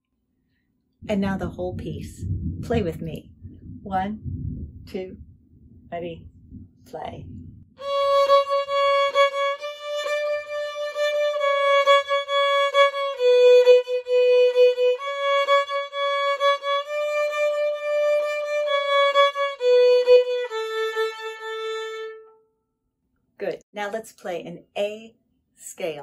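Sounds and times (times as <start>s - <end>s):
solo fiddle melody: 7.8s - 22.4s.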